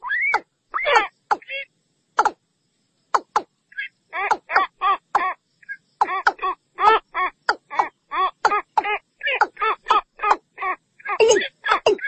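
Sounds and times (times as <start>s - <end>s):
bird calling with nasal notes: 0.0s - 2.4s, 3.1s - 12.0s.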